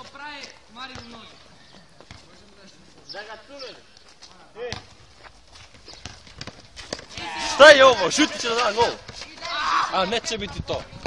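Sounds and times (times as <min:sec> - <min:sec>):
football knocks and scuffs: 0:00.9 - 0:01.4, 0:02.0 - 0:02.3, 0:04.7 - 0:07.3
young man shouting: 0:07.2 - 0:10.6.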